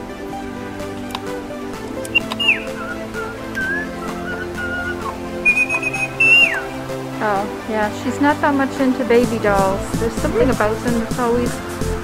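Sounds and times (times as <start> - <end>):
background music: 0.0 - 12.0
electronic toy bird whistling: 2.1 - 6.8.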